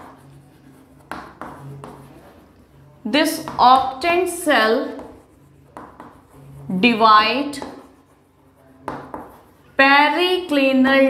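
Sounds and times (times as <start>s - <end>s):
chalk scratching on chalkboard: 0.0s - 9.8s.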